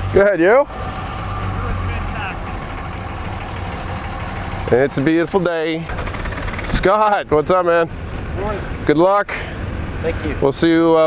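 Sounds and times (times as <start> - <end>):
truck engines idling: 0.0 - 11.0.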